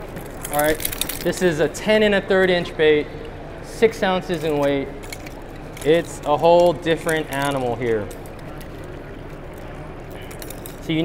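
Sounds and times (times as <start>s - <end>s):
exhibition hall background hiss: 0.0s - 11.0s.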